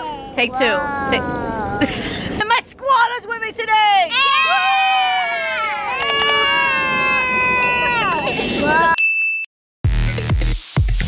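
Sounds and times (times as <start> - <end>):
mouse click: 6.0 - 6.4
ding sound effect: 6.0 - 6.6, 7.6 - 8.4
short chime: 6.0 - 6.7, 7.6 - 8.5.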